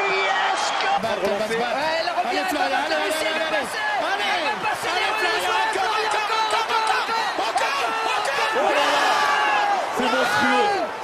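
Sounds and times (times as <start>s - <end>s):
excited sports commentary: 0.0s - 11.0s
stadium crowd cheering: 0.0s - 11.0s.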